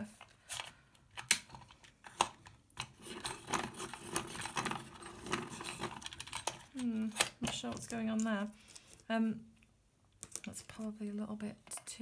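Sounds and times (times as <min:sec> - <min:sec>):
pencil sharpener crank grinding: 0:02.8 - 0:08.3.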